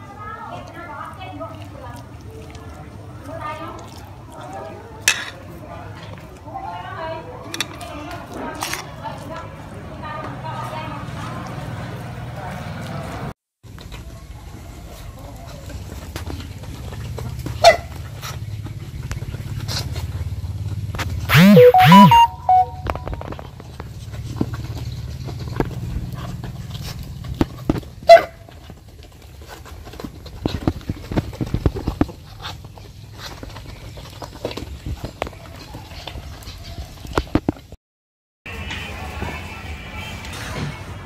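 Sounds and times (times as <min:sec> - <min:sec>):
two-part bird call: 0:21.3 - 0:23.1.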